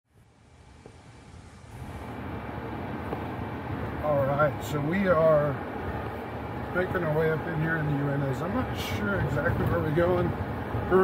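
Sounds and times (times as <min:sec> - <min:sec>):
engine and road noise rumble: 0:00.1 - 0:11.0.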